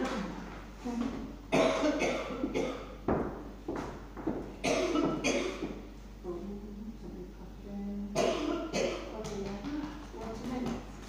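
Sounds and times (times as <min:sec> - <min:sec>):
person coughing: 0:01.5 - 0:03.0, 0:04.6 - 0:05.8, 0:08.2 - 0:09.1.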